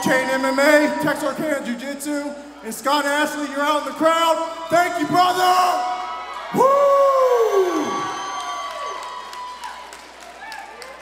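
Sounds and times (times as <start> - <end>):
crowd cheering and whooping: 5.8 - 11.0
scattered clapping: 8.4 - 11.0.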